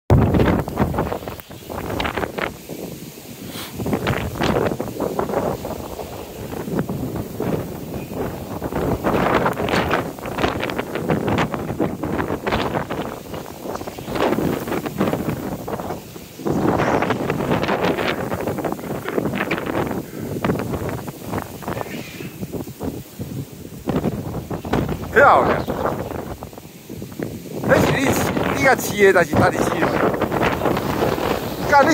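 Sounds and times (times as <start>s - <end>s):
wind buffeting microphone: 0.1s - 31.9s.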